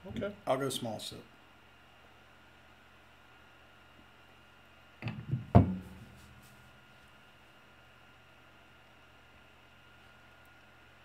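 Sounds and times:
glasses knocking on a table: 5.0 - 5.8.

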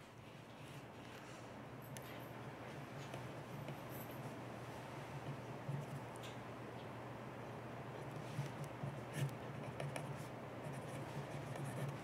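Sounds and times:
low room hum: 0.0 - 12.0
pen scratching on paper: 9.1 - 12.0.

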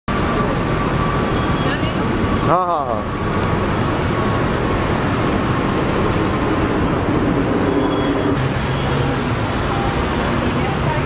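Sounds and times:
traffic noise: 0.1 - 11.0.

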